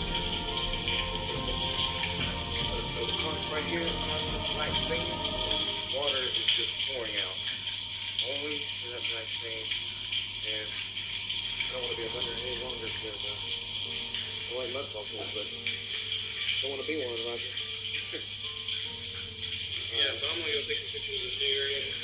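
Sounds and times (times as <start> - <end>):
low hum: 0.0 - 7.6
steady hiss: 0.0 - 22.0.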